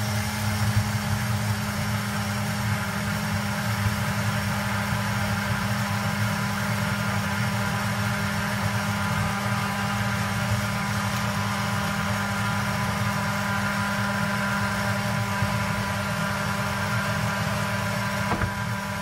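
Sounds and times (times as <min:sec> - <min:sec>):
small blender motor running: 0:00.0 - 0:19.0.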